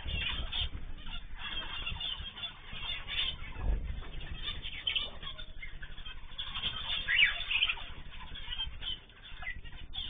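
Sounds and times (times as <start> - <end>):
small birds chattering: 0.0 - 10.0.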